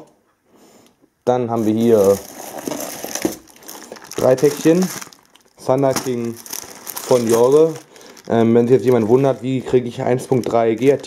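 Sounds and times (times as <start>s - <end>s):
plastic shrink-wrap crinkling: 1.5s - 11.0s.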